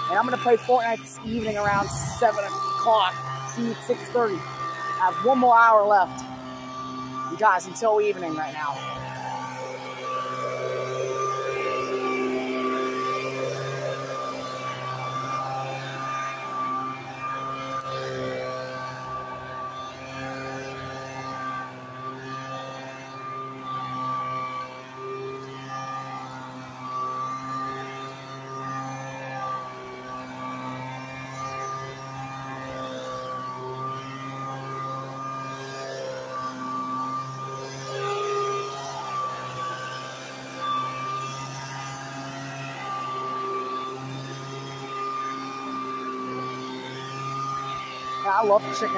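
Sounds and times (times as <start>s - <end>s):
leaf blower droning: 0.0s - 48.9s.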